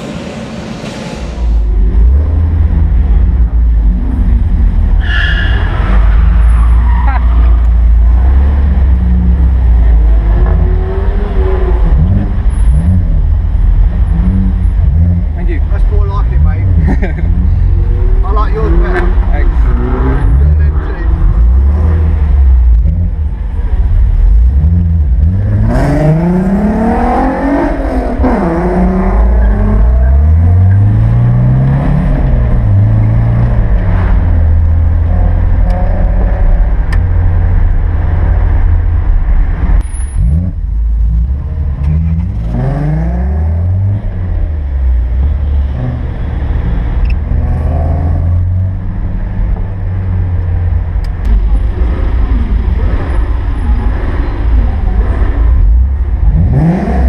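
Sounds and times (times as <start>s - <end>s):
car engine accelerating: 0.0s - 57.0s.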